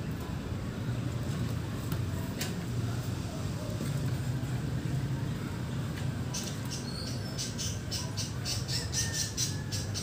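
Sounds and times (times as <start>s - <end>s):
bird chattering: 6.3s - 10.0s.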